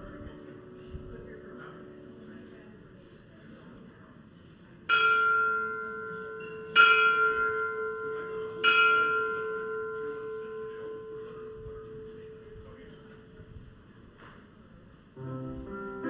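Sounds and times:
church bell tolling: 0.0 - 2.8, 4.9 - 13.6, 15.2 - 16.0
low bell hum: 4.9 - 13.6.

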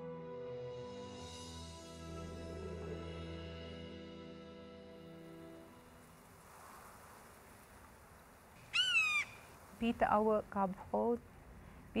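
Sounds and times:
background hiss: 1.4 - 12.0
high animal cry: 8.7 - 9.4.

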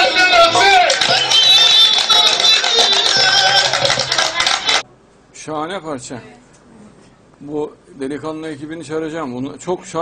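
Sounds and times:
loud music: 0.0 - 4.8.

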